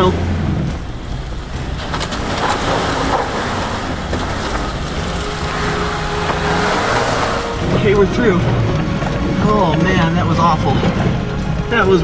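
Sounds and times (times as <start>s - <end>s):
tyres working over rock: 0.0s - 12.0s.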